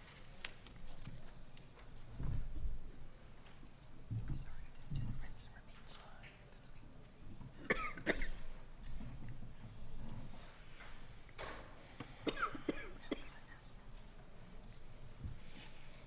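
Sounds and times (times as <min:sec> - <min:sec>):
people coughing: 0:07.6 - 0:08.5, 0:12.2 - 0:13.7.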